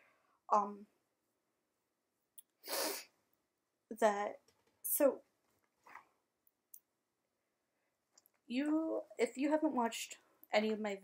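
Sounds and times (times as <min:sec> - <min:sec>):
forceful burst of breath: 0:02.6 - 0:03.1.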